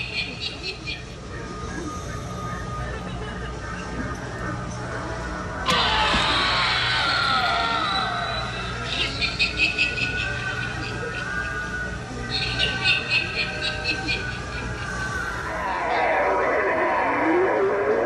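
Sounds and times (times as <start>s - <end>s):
shrill falling sound: 5.7s - 8.6s.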